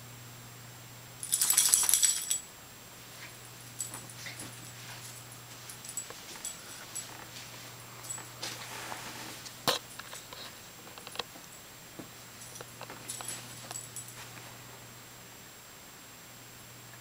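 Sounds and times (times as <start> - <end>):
dog collar tags jingling: 1.2 - 2.5, 3.7 - 7.4, 8.0 - 8.4, 12.4 - 14.2.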